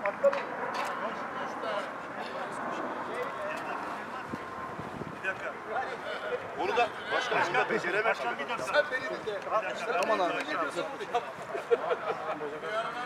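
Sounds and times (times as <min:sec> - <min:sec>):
murmur of people talking: 0:00.0 - 0:13.0.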